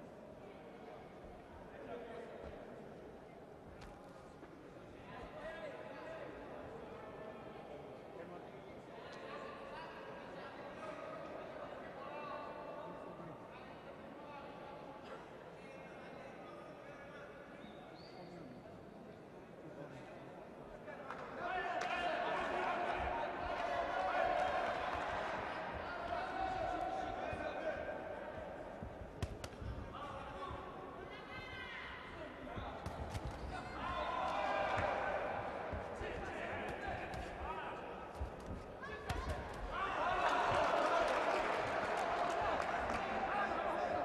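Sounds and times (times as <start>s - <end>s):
crowd shouting and cheering: 21.5s - 28.6s, 33.6s - 44.0s.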